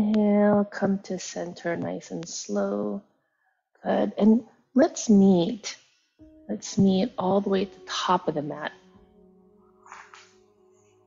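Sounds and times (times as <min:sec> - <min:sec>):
faint background music: 0:00.0 - 0:03.1, 0:03.8 - 0:11.0.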